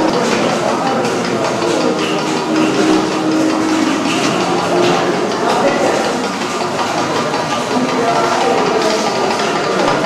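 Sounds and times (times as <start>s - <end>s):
murmur of many people talking: 0.0s - 10.0s.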